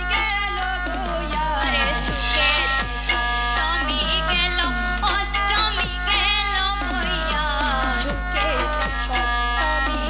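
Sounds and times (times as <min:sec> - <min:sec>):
instrumental accompaniment with beat: 0:00.0 - 0:10.0
woman singing into a microphone: 0:00.0 - 0:10.0.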